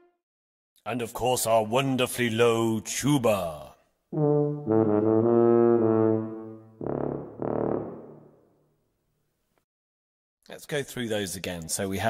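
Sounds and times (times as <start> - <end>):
tuba playing low notes: 4.1 - 8.4.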